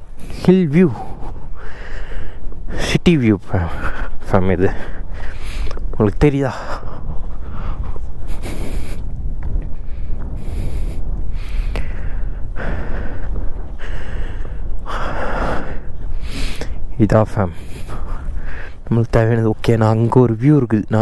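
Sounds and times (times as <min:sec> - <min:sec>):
wind rumbling on microphone: 0:00.0 - 0:21.0
person breathing: 0:00.2 - 0:02.5, 0:03.7 - 0:05.9, 0:06.6 - 0:16.9, 0:17.5 - 0:18.9.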